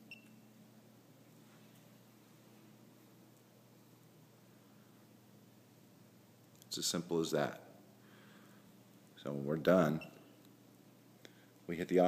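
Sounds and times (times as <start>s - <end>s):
faint steady hum: 0.0s - 12.0s
remote control key beep: 0.1s - 0.4s.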